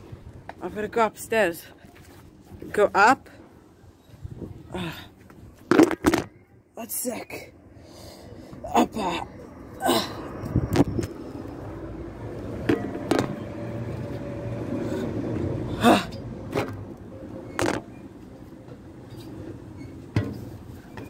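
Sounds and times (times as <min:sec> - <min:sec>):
sharp knocks and bumps: 0:05.7 - 0:06.3, 0:17.6 - 0:17.9
steady low rumble: 0:08.6 - 0:19.0.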